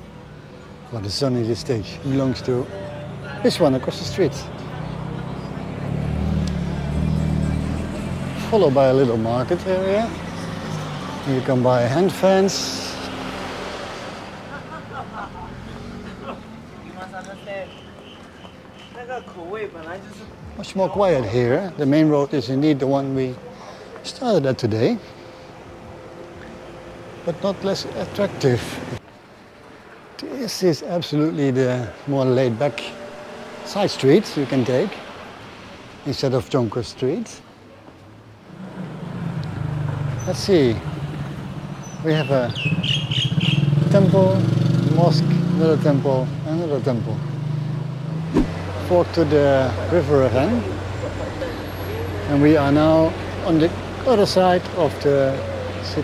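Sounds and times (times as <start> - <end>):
minivan engine hum passing: 0.0 - 18.5, 31.4 - 36.0, 42.6 - 56.0.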